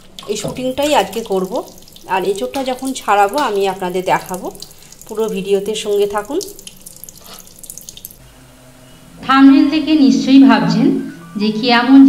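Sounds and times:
tap water splashing in sink: 0.2 - 8.2.

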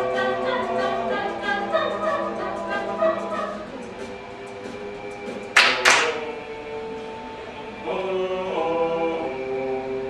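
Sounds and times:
a cappella group singing chord: 0.0 - 10.0
sharp percussive hits: 5.6 - 6.3.

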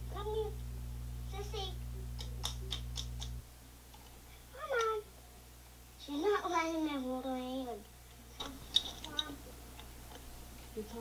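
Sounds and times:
camcorder hum: 0.0 - 5.1.

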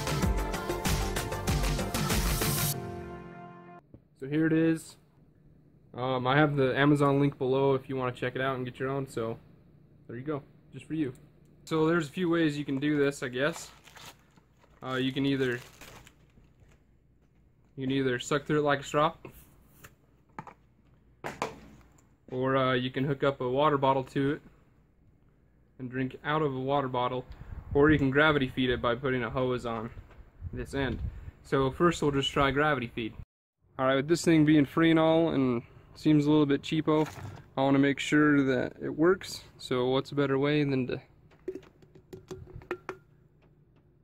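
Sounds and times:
plastic handling rustle: 12.7 - 17.8
scoop tapping glass: 41.4 - 43.2.

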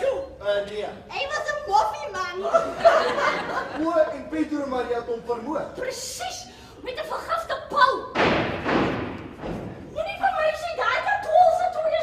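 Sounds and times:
actors speaking: 0.0 - 8.2.

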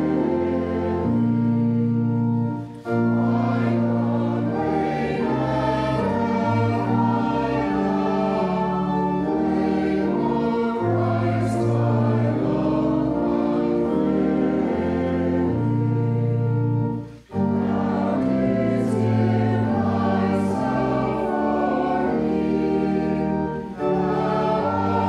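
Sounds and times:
congregation singing a hymn: 0.0 - 25.0
organ accompaniment: 0.0 - 25.0.

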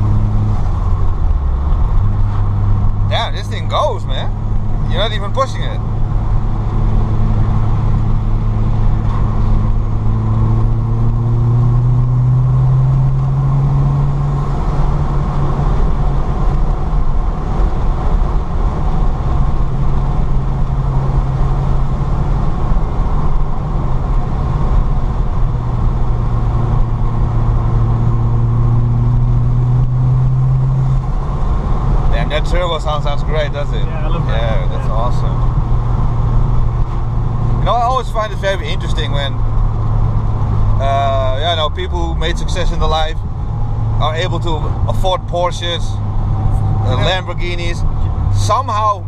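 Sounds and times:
car engine accelerating: 0.0 - 49.0
road noise: 0.0 - 49.0.

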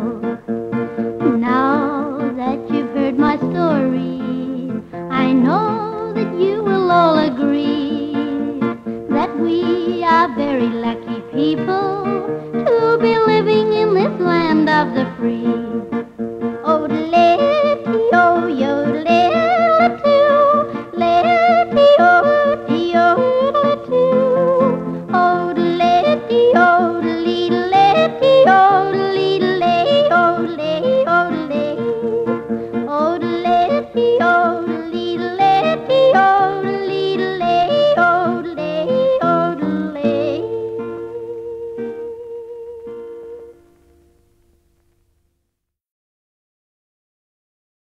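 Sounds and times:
rhythmic country accompaniment: 0.0 - 44.9
instrumental backing music: 0.0 - 45.4.

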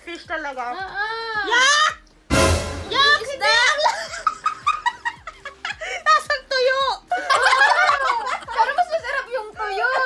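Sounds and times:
young women laughing: 3.8 - 6.0, 7.1 - 8.9.

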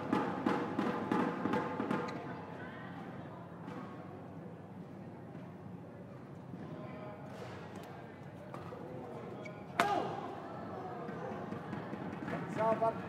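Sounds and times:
crowd murmur: 7.9 - 13.0.

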